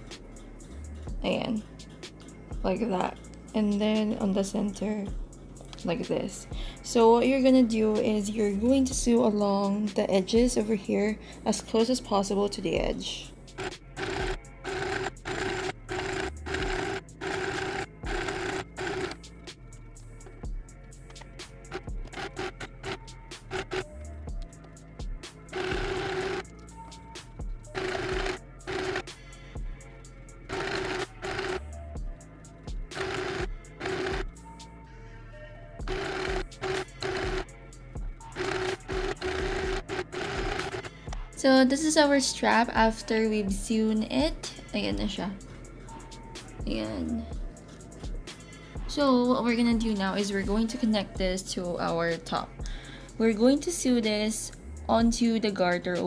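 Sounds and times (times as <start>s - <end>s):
sewing machine stitching: 13.6s - 19.2s, 21.7s - 23.8s, 25.5s - 26.5s, 27.7s - 29.2s, 30.5s - 31.6s, 32.9s - 34.3s, 35.8s - 37.4s, 38.4s - 40.9s.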